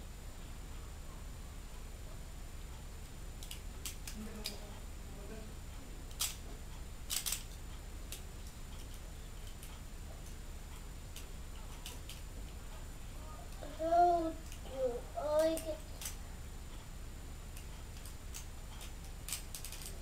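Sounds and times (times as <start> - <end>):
plastic toy parts clicking: 3.4 - 4.6, 6.1 - 6.4, 7.1 - 8.2, 8.8 - 9.7, 11.2 - 12.2, 15.4 - 16.2, 17.6 - 20.0.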